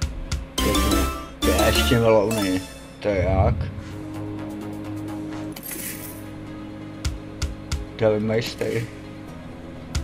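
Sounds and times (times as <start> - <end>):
jingling coin-like chime: 0.6 - 3.0, 5.6 - 6.3.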